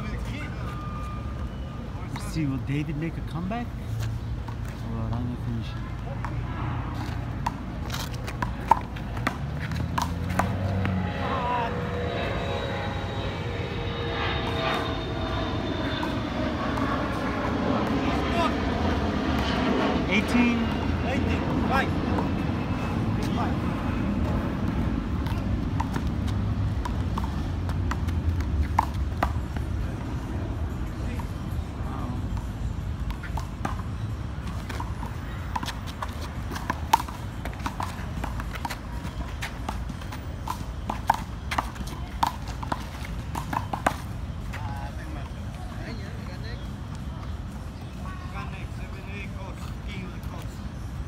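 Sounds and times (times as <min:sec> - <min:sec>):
traffic rumble: 0:00.0 - 0:51.0.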